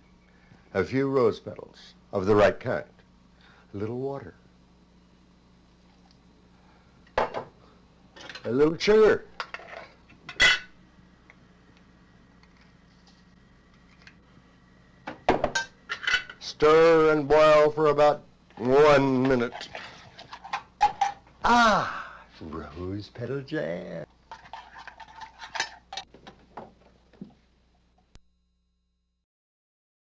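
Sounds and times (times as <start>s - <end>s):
faint steady hum: 0.0s - 29.2s.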